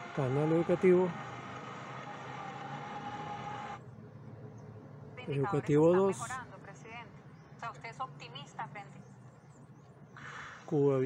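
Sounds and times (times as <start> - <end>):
noisy tv broadcast with tone: 0.0 - 11.0.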